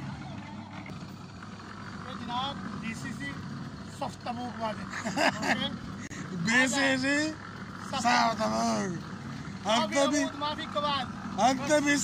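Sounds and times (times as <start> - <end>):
concrete mixer engine drone: 0.0 - 12.0.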